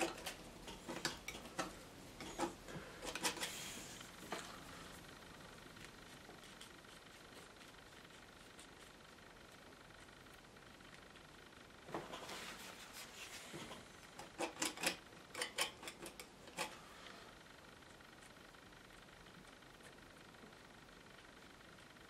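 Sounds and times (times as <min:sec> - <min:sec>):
palette knife clicking and scraping: 0:00.0 - 0:03.6, 0:14.1 - 0:16.8.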